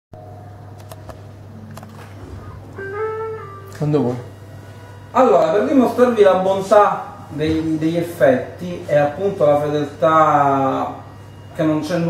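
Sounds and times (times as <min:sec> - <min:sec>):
guitar amp hum: 0:00.2 - 0:07.2
electric guitar note: 0:02.2 - 0:05.1.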